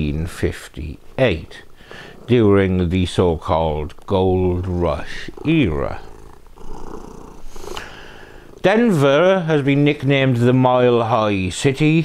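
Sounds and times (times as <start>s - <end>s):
cat purring: 0.9s - 10.9s.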